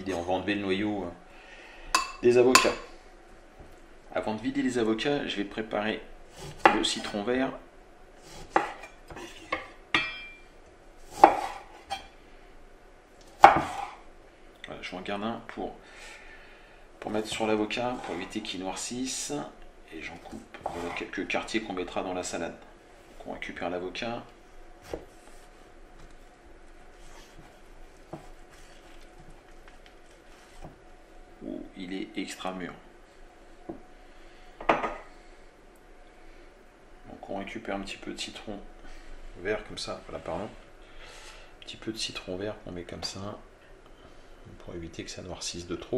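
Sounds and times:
knife taps and scrapes: 28.1s - 29.4s.

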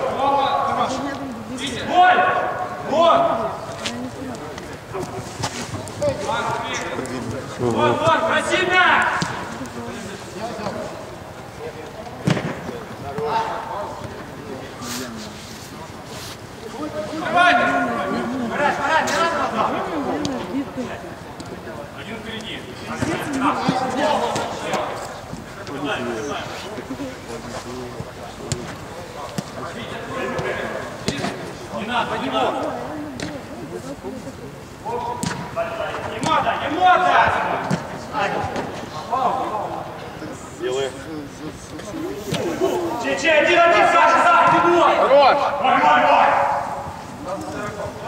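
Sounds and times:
footballers shouting: 0.0s - 3.6s, 5.0s - 9.6s, 22.0s - 26.4s, 35.1s - 40.0s, 42.0s - 48.0s
players calling out: 16.4s - 48.0s.

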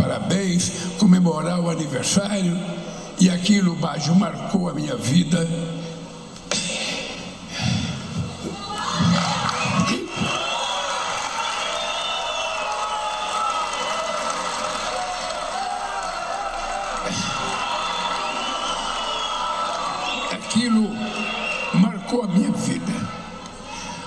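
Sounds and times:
large crowd cheering and shouting: 8.2s - 24.0s.

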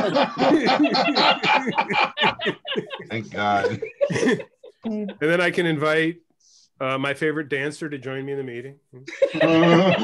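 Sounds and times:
people laughing: 0.0s - 5.2s, 9.1s - 10.0s
people talking: 3.0s - 3.9s, 4.9s - 6.2s.

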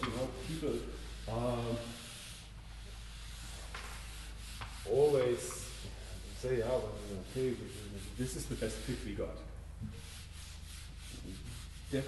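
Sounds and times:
marker rubbing on whiteboard: 0.0s - 9.1s, 9.9s - 12.0s.

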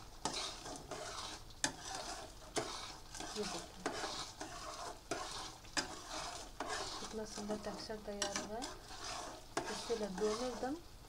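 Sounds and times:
syrup bubbling at a boil: 0.0s - 11.0s.

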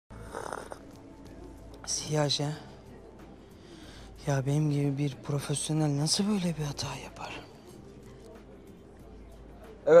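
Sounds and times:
faint background music: 0.1s - 10.0s.

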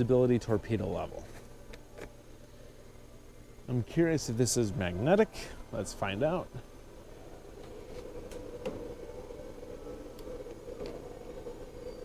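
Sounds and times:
indoor background hum: 0.0s - 12.0s.

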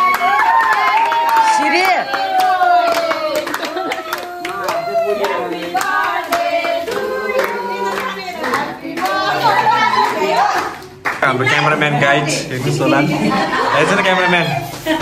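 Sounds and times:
hands clapping: 0.0s - 11.3s
group of people singing: 2.0s - 15.0s.

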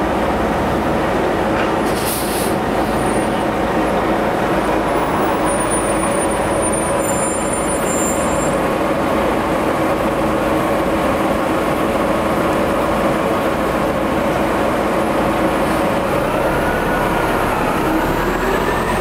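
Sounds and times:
bus engine running: 0.0s - 19.0s
air hiss: 1.9s - 2.6s.

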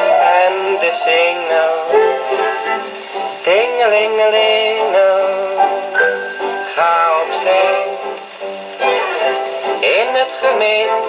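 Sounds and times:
orchestral music on gramophone: 0.0s - 11.0s.

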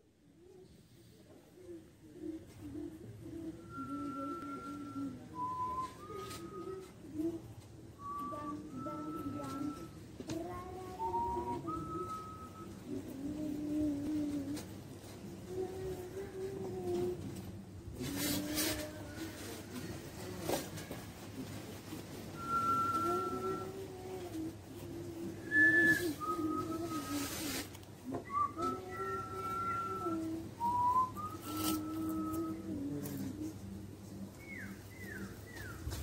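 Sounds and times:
person whistling: 3.5s - 6.9s, 8.0s - 9.9s, 11.0s - 12.8s, 22.4s - 23.9s, 25.4s - 32.8s.

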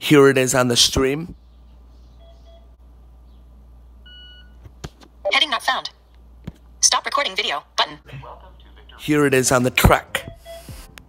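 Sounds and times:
low steady hum: 0.0s - 11.0s
short electronic beep: 10.2s - 10.8s.

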